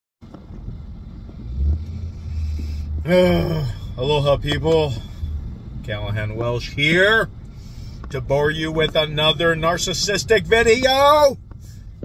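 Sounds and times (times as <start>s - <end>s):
vehicle engine rumble: 0.2s - 12.0s.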